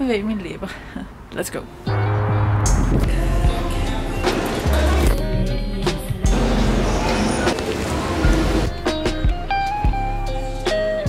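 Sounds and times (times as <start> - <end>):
music with heavy bass: 1.9 - 11.0.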